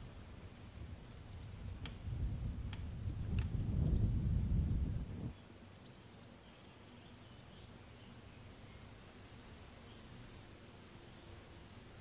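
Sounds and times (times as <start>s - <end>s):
bird chirps: 5.3s - 9.0s.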